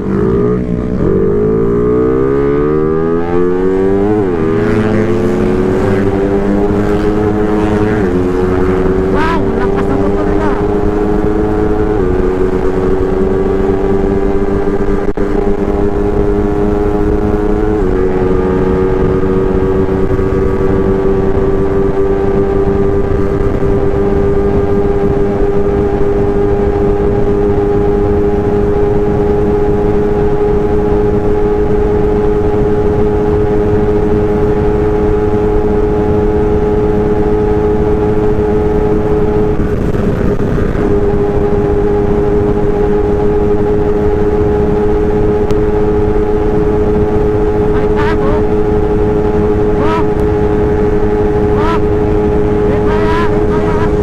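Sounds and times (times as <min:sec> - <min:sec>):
motorcycle engine accelerating: 0:00.0 - 0:54.0
wind rushing over microphone: 0:00.0 - 0:54.0.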